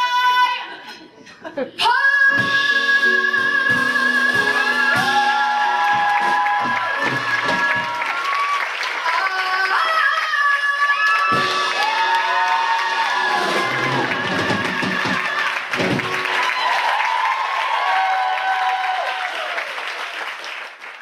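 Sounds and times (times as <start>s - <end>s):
audience applauding and cheering: 3.7s - 21.0s.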